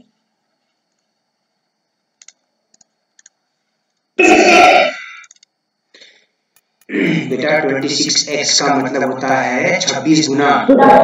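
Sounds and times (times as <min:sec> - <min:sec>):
faint clicks: 0:02.2 - 0:04.1, 0:05.2 - 0:06.9.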